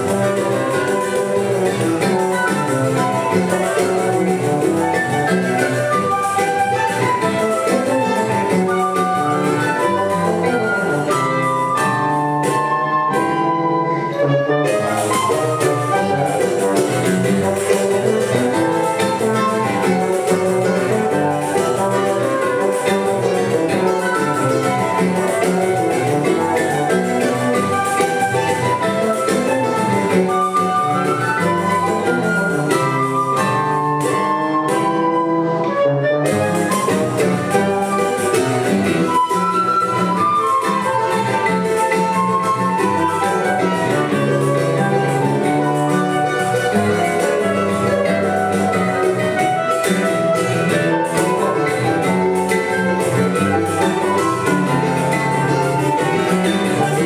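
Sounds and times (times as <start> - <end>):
live ensemble playing instrumental tune: 0.0 - 57.0.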